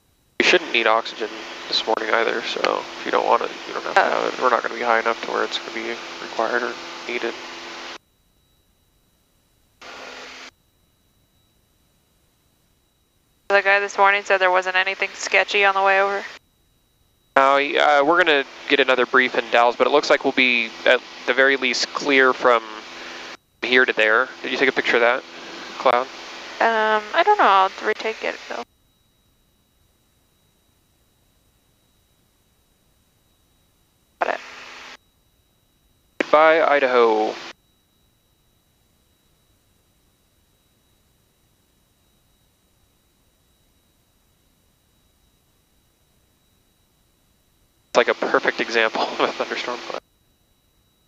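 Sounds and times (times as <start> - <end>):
aircraft engine and cabin noise: 0.4 - 7.9, 48.0 - 50.0
intercom hiss: 0.4 - 8.0, 13.5 - 16.4, 17.4 - 28.6, 34.2 - 35.0, 36.2 - 37.5, 48.0 - 50.0.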